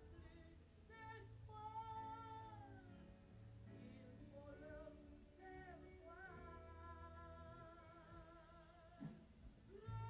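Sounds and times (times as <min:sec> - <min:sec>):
woman singing softly: 0:00.0 - 0:03.1, 0:03.7 - 0:10.0.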